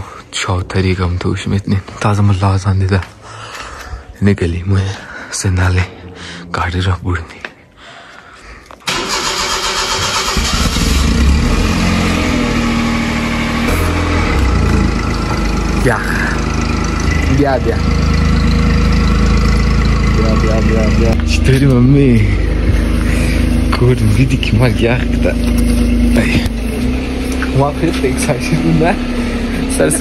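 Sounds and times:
car engine idling: 0:08.9 - 0:30.0
voices: 0:14.3 - 0:30.0.

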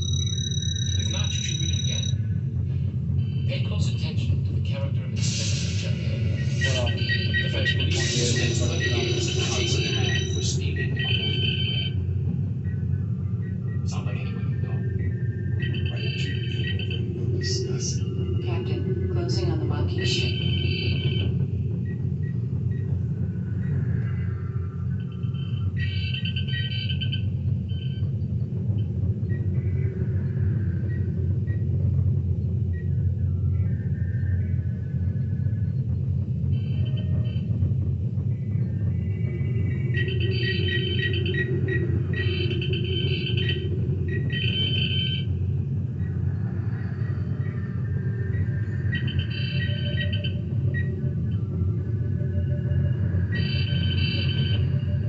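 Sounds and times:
computer console bleeps and chirps: 0:00.0 - 0:02.2, 0:06.6 - 0:12.0, 0:15.6 - 0:18.1, 0:40.0 - 0:45.3, 0:48.9 - 0:51.4, 0:52.1 - 0:55.0.

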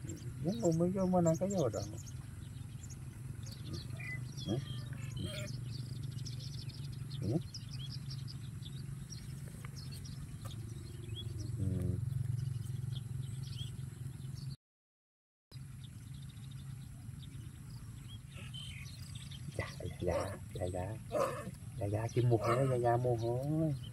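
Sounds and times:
small birds chirping: 0:00.0 - 0:14.6, 0:15.5 - 0:23.9
steady low hum: 0:00.0 - 0:14.6, 0:15.6 - 0:23.9.

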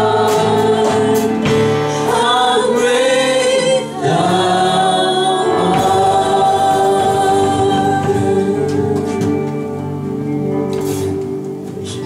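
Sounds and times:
voices singing in harmony: 0:00.0 - 0:10.3
electric guitars: 0:00.0 - 0:12.0.

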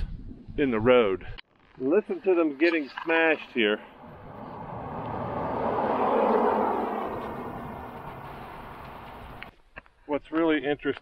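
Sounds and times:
van driving past: 0:03.9 - 0:09.5.

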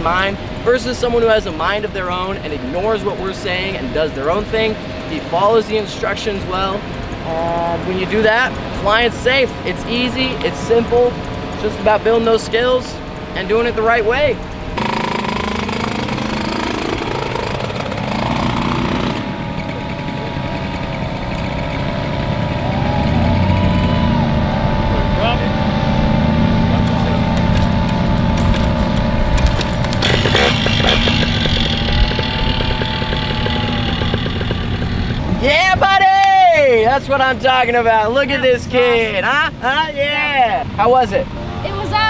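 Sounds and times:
engine and propeller droning: 0:00.0 - 0:35.8.

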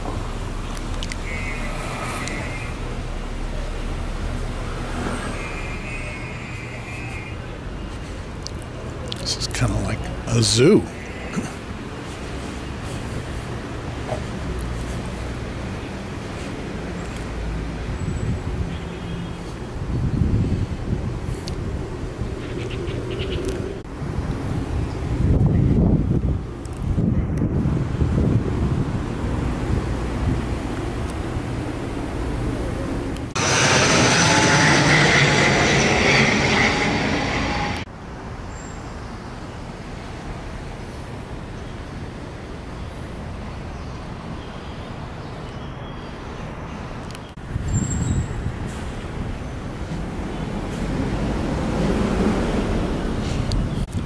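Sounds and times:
low rumble of road traffic: 0:00.0 - 0:54.0
loud rushing noise: 0:33.2 - 0:37.9.

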